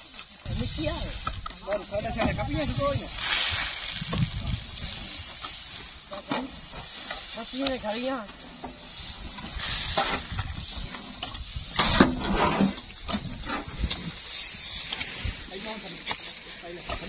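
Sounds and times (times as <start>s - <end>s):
rice grain rushing and sliding: 0.0s - 17.0s
shovels scraping and knocking: 0.0s - 17.0s.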